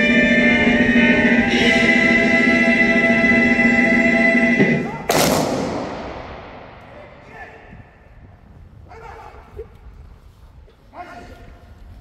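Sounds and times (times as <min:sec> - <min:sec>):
voices singing with instruments: 0:00.0 - 0:05.1
sharp loud bang: 0:04.9 - 0:07.7.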